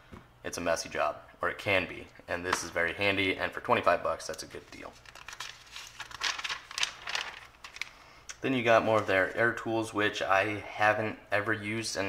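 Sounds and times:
paper page rustling: 4.2s - 9.6s.

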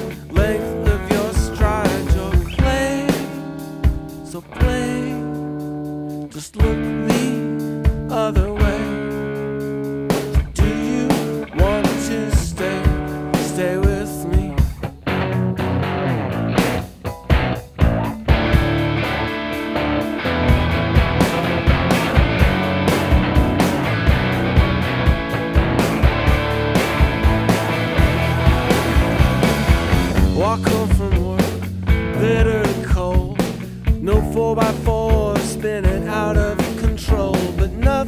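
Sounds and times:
bending guitar notes: 0.0s - 38.0s
rock band playing: 0.0s - 38.0s.

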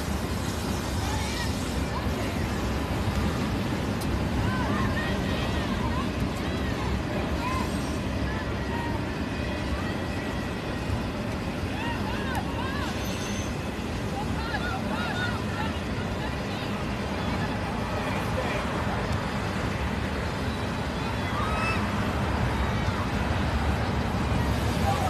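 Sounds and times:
distant people calling and chattering: 0.0s - 25.0s.

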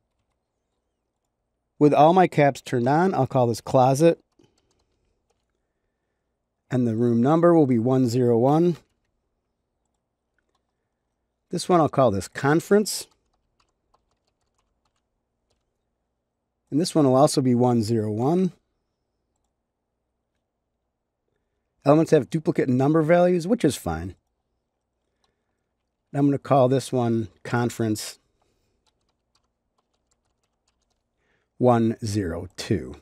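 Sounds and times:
faint keyboard typing: 0.0s - 1.8s, 2.8s - 7.5s, 8.5s - 16.8s, 18.2s - 21.8s, 23.1s - 33.0s.

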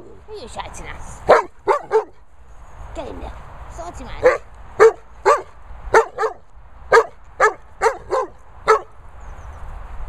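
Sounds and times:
dog barking: 1.3s - 2.2s, 4.2s - 8.9s.

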